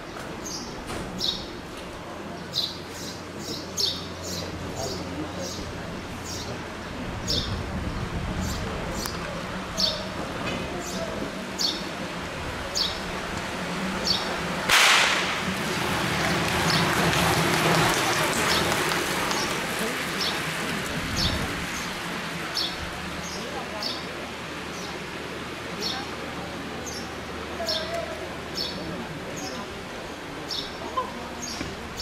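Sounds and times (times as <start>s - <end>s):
low background murmur: 0.0s - 32.0s
bicycles whooshing past: 14.8s - 22.7s.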